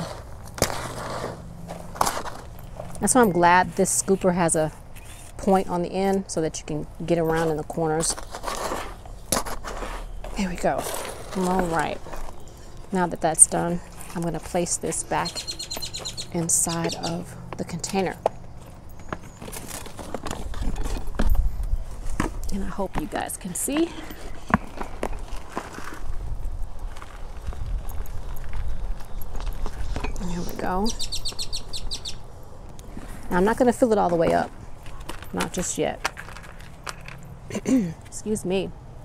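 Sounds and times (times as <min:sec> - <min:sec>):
scooper scraping potting soil: 0:00.0 - 0:18.2.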